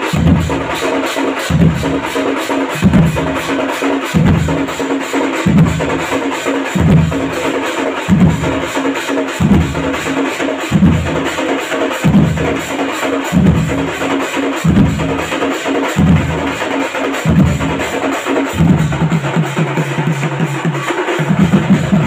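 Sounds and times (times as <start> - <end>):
deep bass drum beat: 0.0 - 0.7, 1.5 - 2.0, 2.8 - 3.4, 4.2 - 4.8, 5.4 - 6.0, 6.8 - 7.4, 8.1 - 8.6, 9.4 - 10.0, 10.7 - 11.3, 12.0 - 12.7, 13.3 - 15.4, 16.0 - 16.6, 17.2 - 17.8, 18.5 - 19.2, 21.4 - 22.0
cymbals: 0.0 - 22.0
fast drumming: 0.0 - 22.0.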